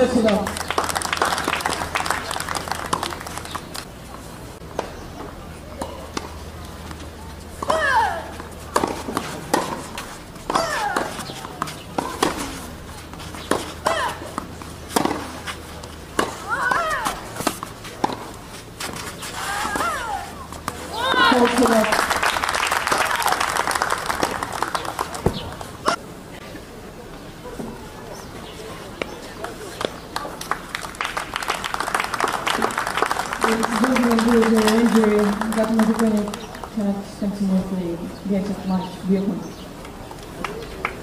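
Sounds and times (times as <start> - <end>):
tennis racket hitting ball: 7.6 - 21.8.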